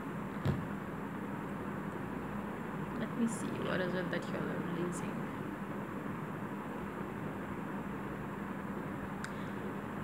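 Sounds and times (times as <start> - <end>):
low background hum: 0.0 - 10.0
soft thump: 0.4 - 0.7.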